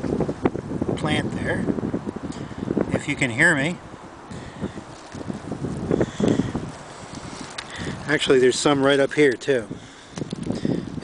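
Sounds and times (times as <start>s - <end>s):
wind buffeting microphone: 0.0s - 11.0s
footsteps rustling through shrubs: 4.7s - 8.3s.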